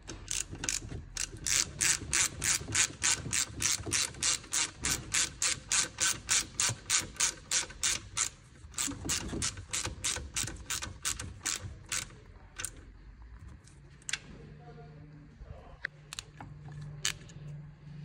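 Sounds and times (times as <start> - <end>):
hand ratchet clicking: 0.0 - 12.8.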